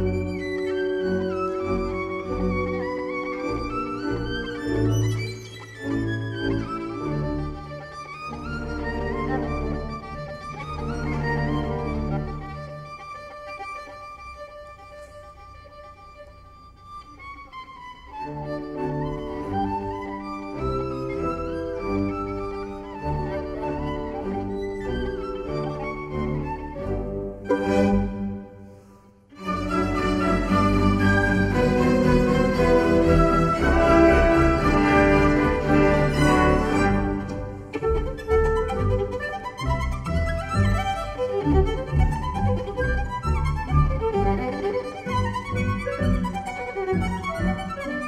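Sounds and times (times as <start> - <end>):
solo violin: 0.0 - 48.0
string orchestra bowed chords: 0.0 - 48.0.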